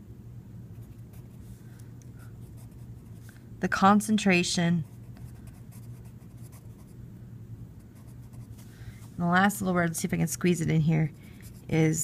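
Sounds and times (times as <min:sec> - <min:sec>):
pencil scratching on paper: 0:11.0 - 0:11.9.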